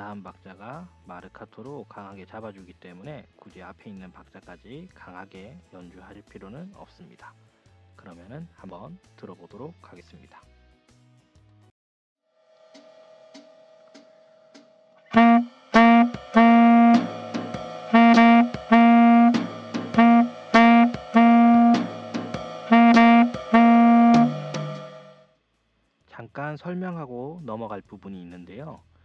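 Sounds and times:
backing track drum beat: 0:15.1 - 0:25.2
saxophone playing short notes: 0:15.1 - 0:25.2.

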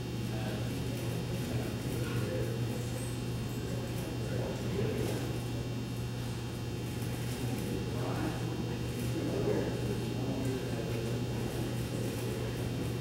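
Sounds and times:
low electrical hum: 0:00.0 - 0:13.0
murmur of people talking: 0:00.0 - 0:13.0.

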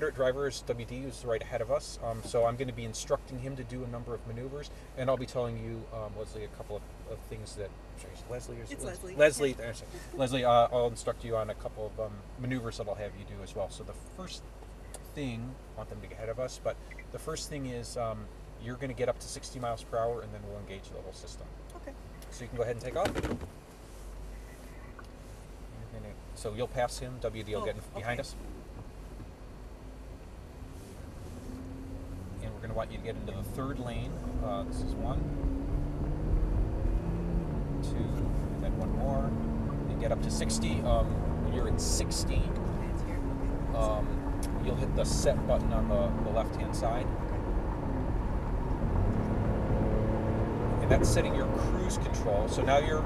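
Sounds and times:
car cabin hum: 0:18.8 - 0:53.0.

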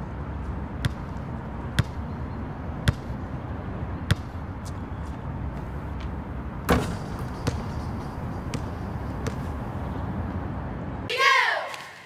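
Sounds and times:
basketball bouncing on hard court: 0:00.8 - 0:02.0, 0:02.8 - 0:03.2, 0:04.1 - 0:04.4, 0:06.7 - 0:09.6.

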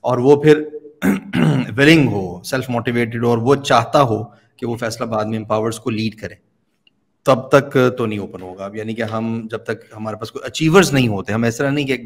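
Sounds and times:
man speaking: 0:00.0 - 0:06.4, 0:07.2 - 0:12.0.

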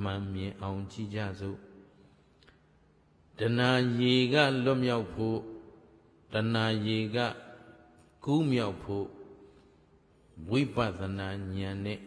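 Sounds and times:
man chanting: 0:03.4 - 0:05.7, 0:06.3 - 0:09.3, 0:10.4 - 0:12.0.

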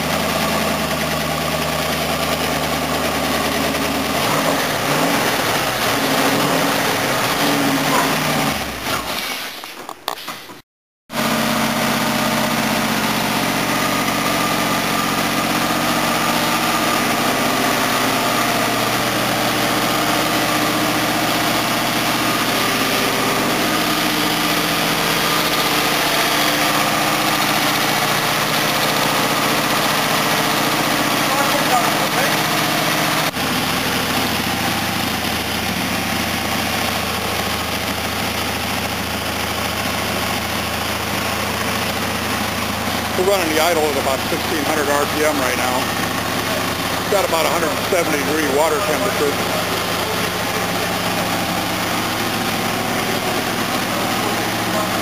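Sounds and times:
car engine fast idling: 0:00.0 - 0:09.2, 0:11.1 - 0:55.0.

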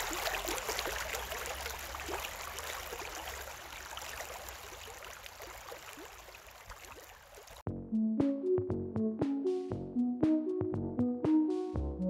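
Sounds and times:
stream over gravel: 0:00.0 - 0:07.7.

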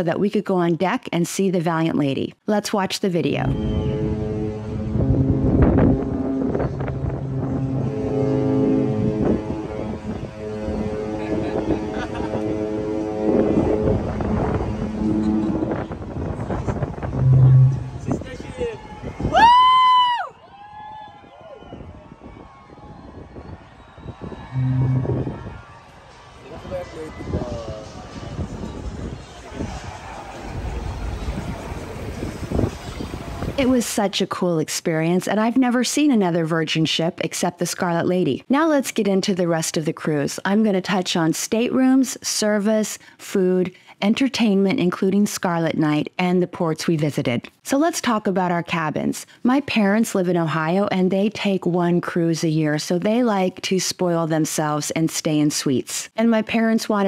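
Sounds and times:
ship horn long deep blasts: 0:03.5 - 0:18.5, 0:24.4 - 0:25.7
wind buffeting microphone: 0:03.5 - 0:19.5, 0:21.1 - 0:25.7, 0:26.6 - 0:33.8
rush of the sea: 0:28.4 - 0:33.6.

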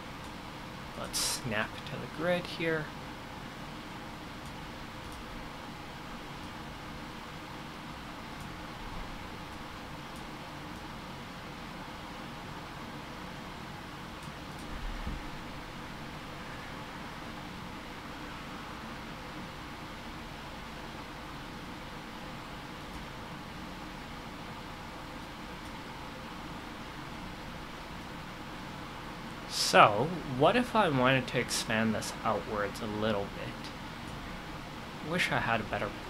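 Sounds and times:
room noise hiss: 0:00.0 - 0:36.0.

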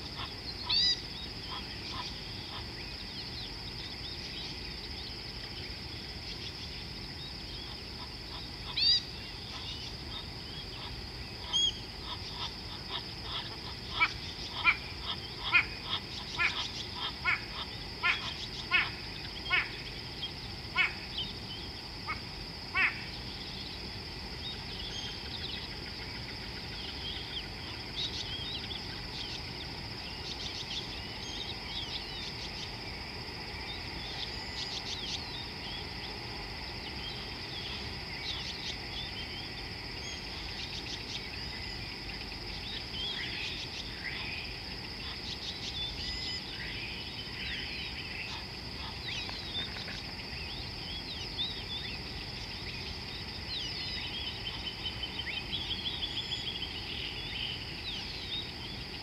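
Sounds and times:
insect chorus trilling: 0:00.0 - 0:59.0.

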